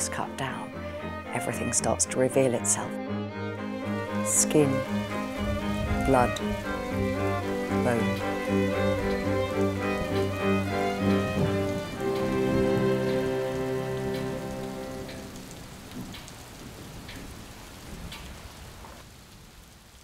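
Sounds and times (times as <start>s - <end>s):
string music: 0.0s - 16.2s
falling rain: 0.0s - 20.0s
water drips: 3.8s - 20.0s.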